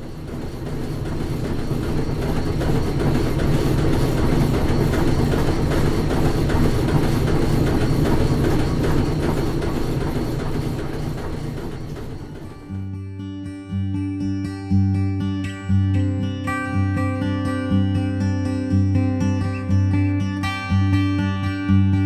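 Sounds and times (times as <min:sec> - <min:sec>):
rapid mechanical clicking: 0:00.0 - 0:12.7
music: 0:11.5 - 0:22.0.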